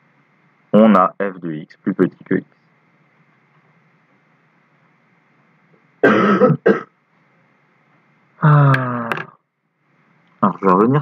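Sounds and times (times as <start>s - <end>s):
man coughing: 6.0s - 6.9s.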